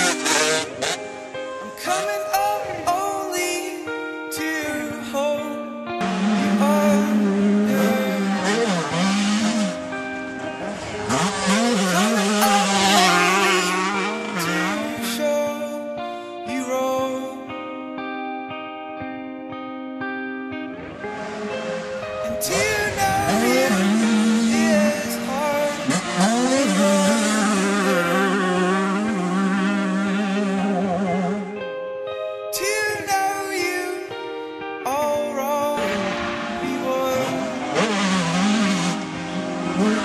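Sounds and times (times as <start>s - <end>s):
dirt bike engine revving: 0.0s - 1.3s, 6.0s - 15.0s, 20.7s - 31.6s, 35.9s - 40.0s
background music: 0.0s - 40.0s.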